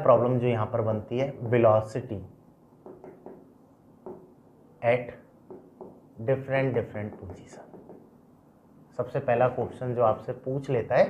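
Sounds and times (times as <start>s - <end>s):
person speaking: 4.1s - 8.2s.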